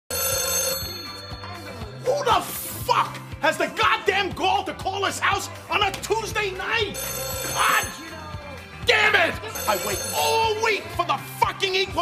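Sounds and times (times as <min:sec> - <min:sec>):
telephone bell ringing: 0:00.1 - 0:02.7, 0:06.9 - 0:08.6, 0:09.3 - 0:10.9.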